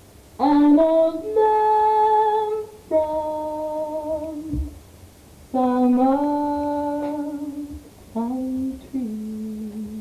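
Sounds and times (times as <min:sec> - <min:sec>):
woman singing jazz: 0:00.4 - 0:04.8, 0:05.5 - 0:10.0.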